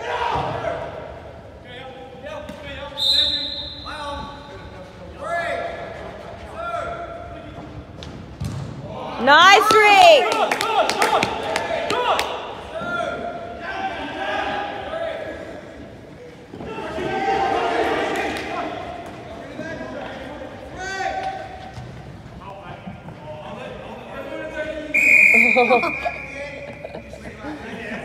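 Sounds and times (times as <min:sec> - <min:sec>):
players calling out: 0:08.8 - 0:28.0.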